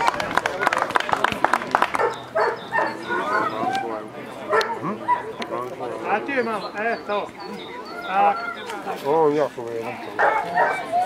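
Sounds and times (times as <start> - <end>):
dogs barking and yipping: 2.0 - 5.4, 6.1 - 9.2, 10.0 - 11.0.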